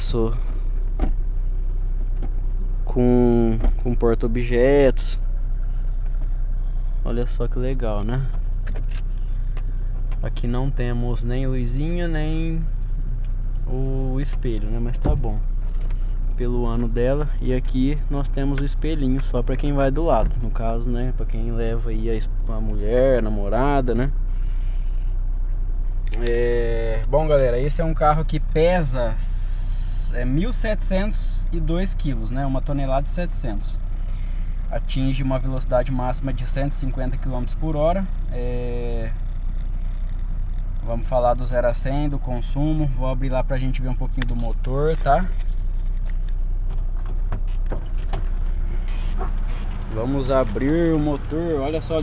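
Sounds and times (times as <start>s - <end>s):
car engine idling: 0.0s - 52.0s.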